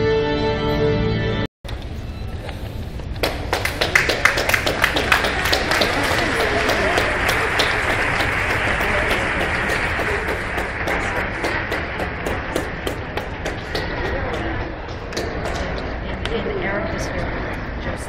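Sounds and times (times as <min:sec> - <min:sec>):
audience applause: 0:03.2 - 0:15.9.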